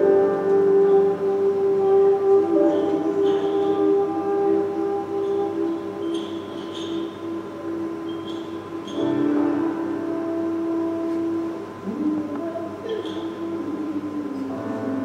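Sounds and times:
piano: 0.0s - 15.0s
saxophone: 0.0s - 15.0s.

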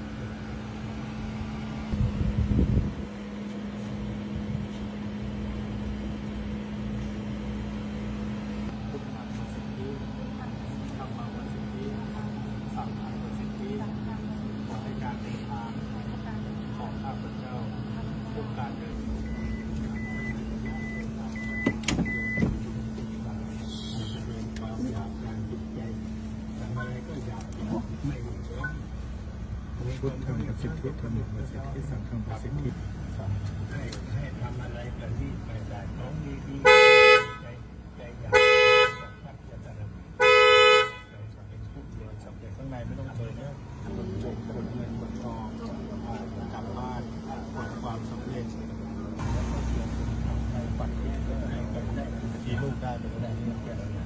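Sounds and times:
car horn blasts: 36.6s - 37.6s, 38.3s - 39.3s, 40.2s - 41.2s.

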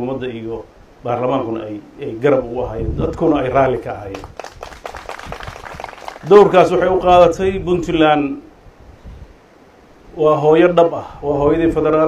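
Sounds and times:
audience clapping: 3.7s - 6.8s
person speaking: 6.2s - 7.3s.

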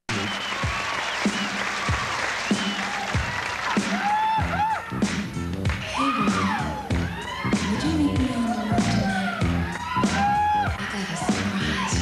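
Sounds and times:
audience applauding and cheering: 0.1s - 12.0s.

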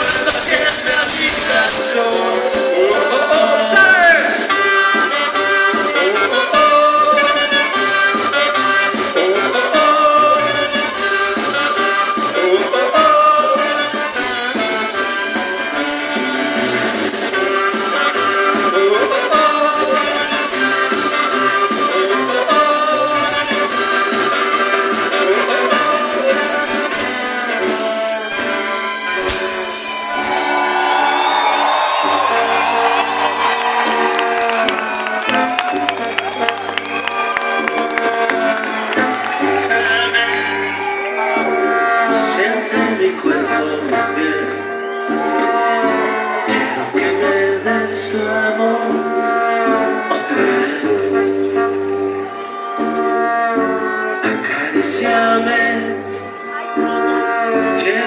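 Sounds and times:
live band playing instrumental: 0.0s - 58.0s
crowd cheering and whooping: 29.2s - 42.8s, 44.7s - 47.5s.

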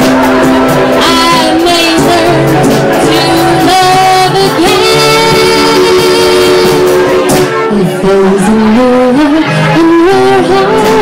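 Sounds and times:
band playing live: 0.0s - 11.0s
steady bass line: 0.0s - 11.0s.

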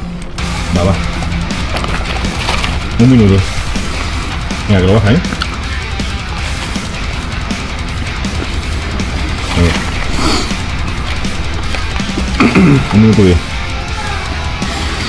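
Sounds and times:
rock music with guitar: 0.0s - 15.0s
man speaking: 0.6s - 1.1s, 2.9s - 3.6s, 4.6s - 5.3s, 9.4s - 9.9s, 12.7s - 13.5s.

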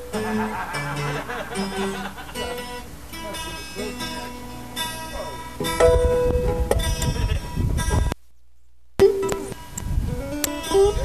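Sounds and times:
acoustic guitar picking and strumming: 0.0s - 8.2s, 9.0s - 11.0s.

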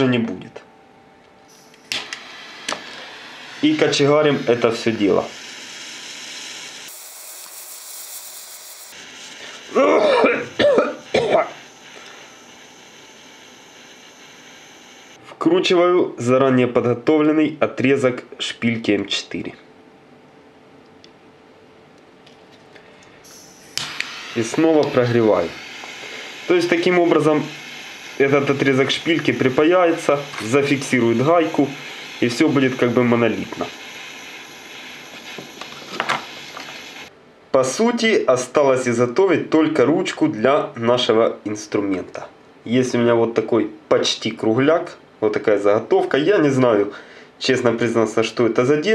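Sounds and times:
gas torch flame hissing: 1.5s - 15.2s, 23.3s - 37.1s
man coughing: 9.8s - 11.6s.

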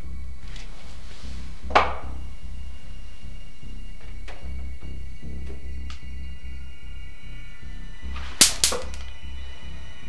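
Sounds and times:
low pulsing dark music: 0.0s - 10.0s
sharp cracks: 8.4s - 9.1s.

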